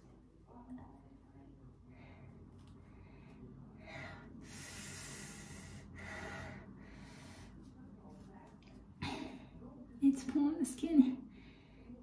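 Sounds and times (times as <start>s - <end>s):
woman breathing: 1.8s - 7.8s, 11.2s - 12.0s.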